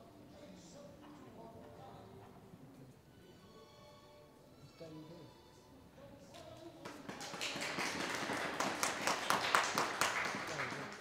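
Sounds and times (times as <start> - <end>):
audience applauding: 6.8 - 11.0.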